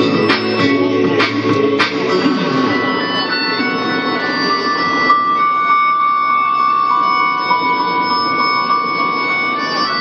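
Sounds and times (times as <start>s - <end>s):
long high held notes: 0.0s - 10.0s.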